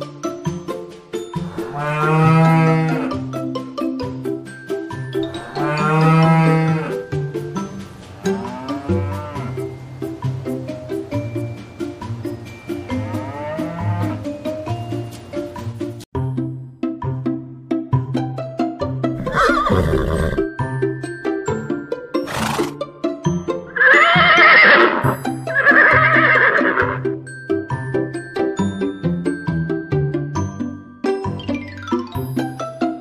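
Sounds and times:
background music with steady beat: 0.0s - 33.0s
cow mooing: 1.4s - 3.2s, 5.2s - 7.0s, 8.2s - 9.6s, 13.0s - 14.2s
horse whinnying: 19.2s - 20.5s, 22.2s - 22.8s, 23.7s - 27.0s.

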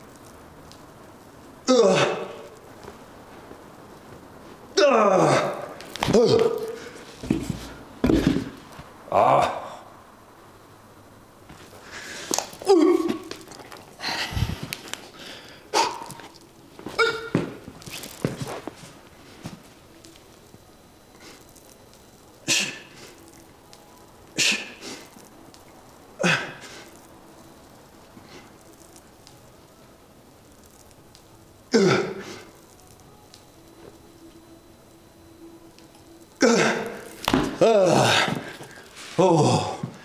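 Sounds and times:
exertion breaths and grunts: 26.2s - 26.9s.

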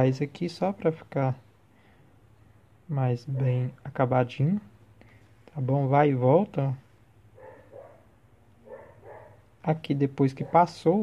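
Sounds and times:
distant dog barking: 3.3s - 3.7s, 7.4s - 9.6s, 10.4s - 11.0s.

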